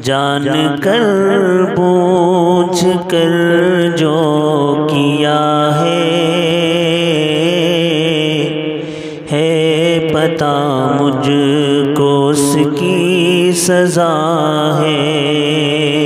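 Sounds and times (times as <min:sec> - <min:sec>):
man singing wordless notes: 0:00.0 - 0:16.0
steady drone: 0:00.0 - 0:16.0.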